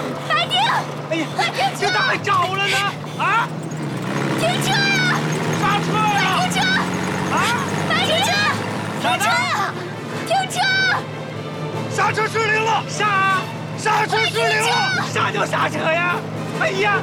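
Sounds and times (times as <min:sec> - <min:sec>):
people shouting: 0:00.0 - 0:03.6, 0:04.2 - 0:11.2, 0:12.0 - 0:17.0
truck engine droning: 0:00.0 - 0:17.0.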